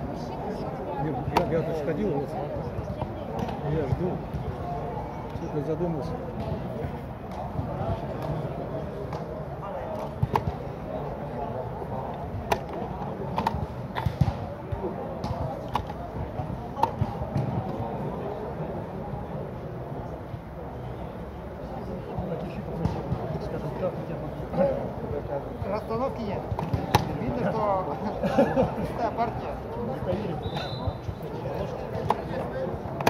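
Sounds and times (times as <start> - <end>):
murmur of voices: 0.0 - 33.0.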